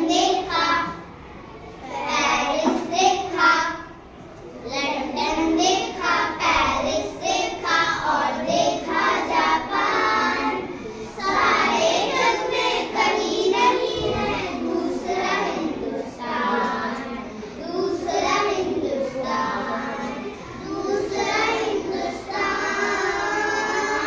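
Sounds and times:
young children singing together: 0:00.0 - 0:24.0.

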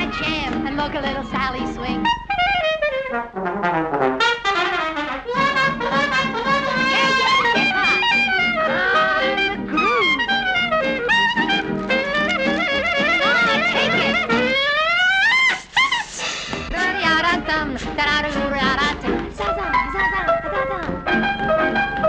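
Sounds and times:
swing band brass playing: 0:00.0 - 0:15.9, 0:16.7 - 0:22.0.

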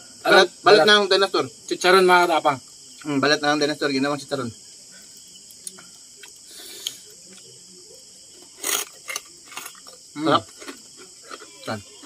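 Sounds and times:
crickets chirring: 0:00.0 - 0:12.0
chewing crispy pork rind: 0:08.3 - 0:12.0.

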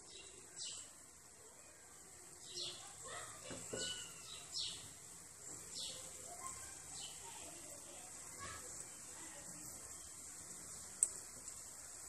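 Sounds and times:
deep-frying sizzle: 0:00.0 - 0:12.0.

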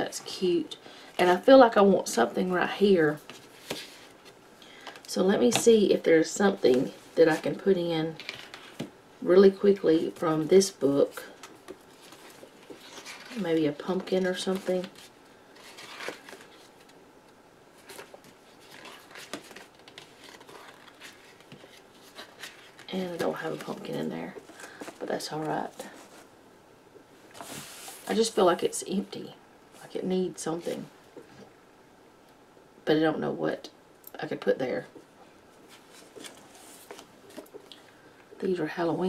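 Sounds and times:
person speaking: 0:05.1 - 0:08.2, 0:09.2 - 0:11.4, 0:12.9 - 0:15.1, 0:22.8 - 0:26.2
paper pages rustling: 0:11.4 - 0:17.0, 0:17.8 - 0:26.3, 0:35.7 - 0:37.6.

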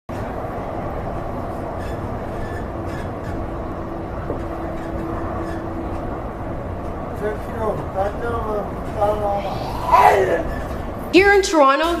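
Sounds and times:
subway train rumble: 0:00.1 - 0:12.0
steady hum: 0:08.2 - 0:12.0.

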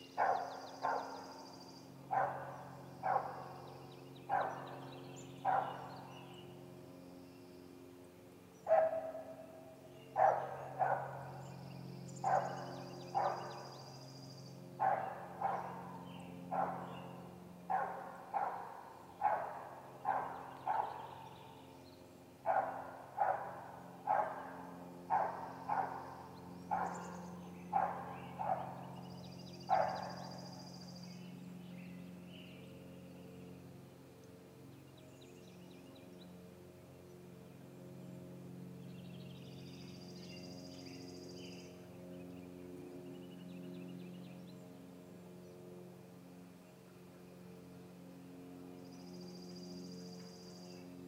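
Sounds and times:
steady low hum: 0:00.0 - 0:51.0
animal barking: 0:00.2 - 0:01.4, 0:02.1 - 0:03.7, 0:04.3 - 0:06.1, 0:08.7 - 0:09.5, 0:10.2 - 0:11.4, 0:12.2 - 0:13.6, 0:14.8 - 0:21.5, 0:22.4 - 0:29.0, 0:29.7 - 0:30.4.

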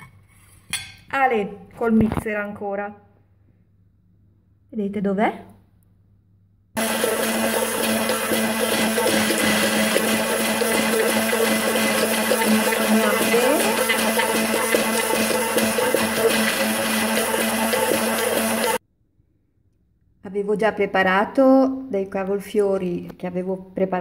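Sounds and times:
immersion blender running: 0:06.8 - 0:18.8.

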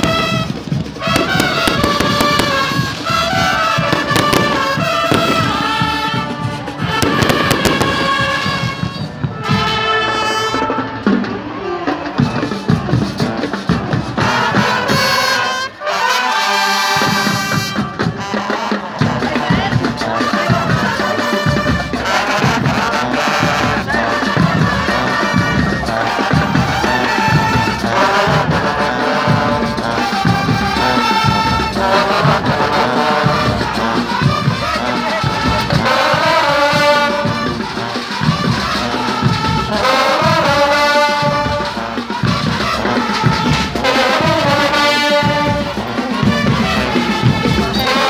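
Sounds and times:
steady drumbeat: 0:00.0 - 0:15.8, 0:16.6 - 0:48.0
marching band brass: 0:00.0 - 0:48.0.

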